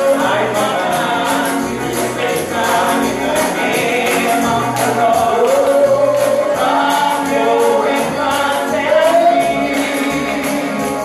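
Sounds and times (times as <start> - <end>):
singer leading congregation: 0.0 - 11.0
tambourine jingling: 0.0 - 11.0.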